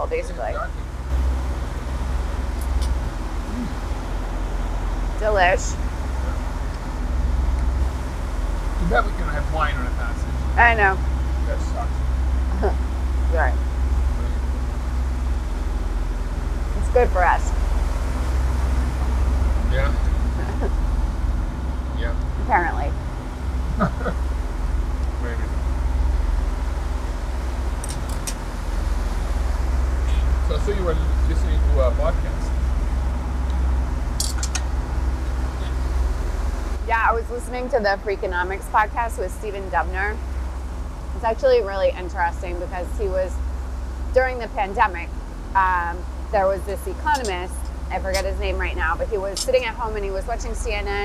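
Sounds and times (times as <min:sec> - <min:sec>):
boat rumbling and rushing at sea: 0:00.0 - 0:51.0.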